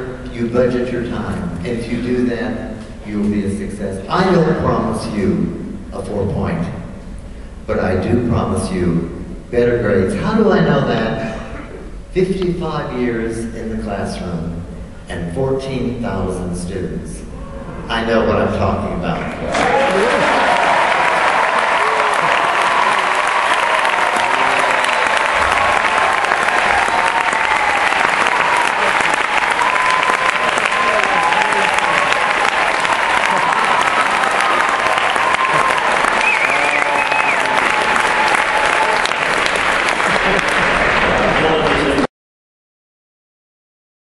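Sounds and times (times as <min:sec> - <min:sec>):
audience applauding: 0:19.3 - 0:42.1
voices cheering: 0:19.4 - 0:42.1.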